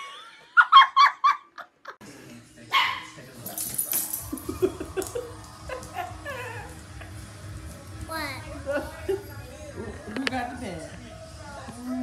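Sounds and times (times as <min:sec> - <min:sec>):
dog barking: 0:02.7 - 0:03.2.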